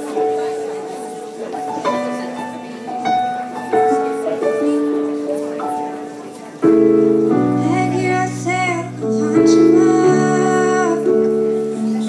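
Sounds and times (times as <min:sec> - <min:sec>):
young female voice singing: 0:07.4 - 0:12.0.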